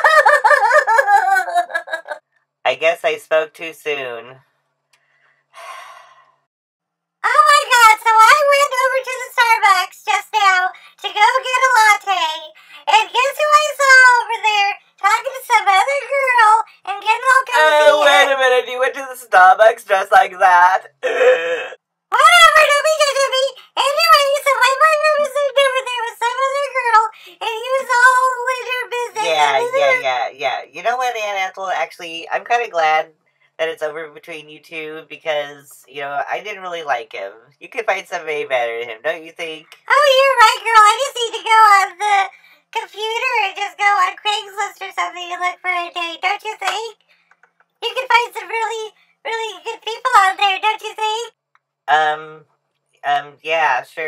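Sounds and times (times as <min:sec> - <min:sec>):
high-pitched sing-song voice: 0:12.9 - 0:18.4, 0:21.0 - 0:30.2.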